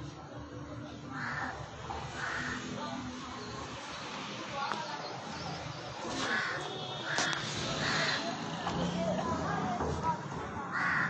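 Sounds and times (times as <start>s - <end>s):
crow cawing: 1.2s - 1.6s, 2.2s - 2.6s, 6.3s - 8.3s, 10.7s - 11.0s.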